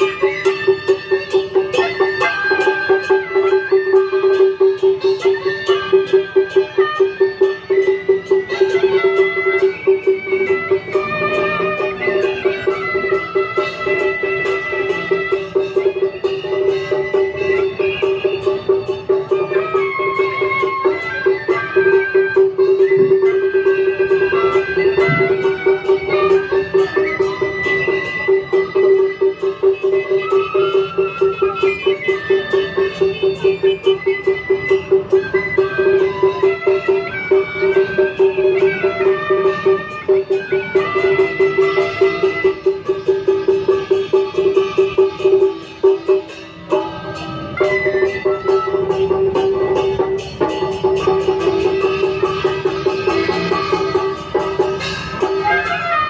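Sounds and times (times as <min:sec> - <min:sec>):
fast percussion beat: 0:00.0 - 0:56.0
procession music melody: 0:00.0 - 0:56.0.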